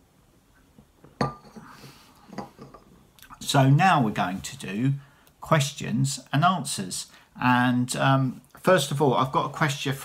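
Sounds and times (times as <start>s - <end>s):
ceramic cup clinking: 1.2s - 1.7s, 2.3s - 2.9s
soft rustle: 1.5s - 5.0s.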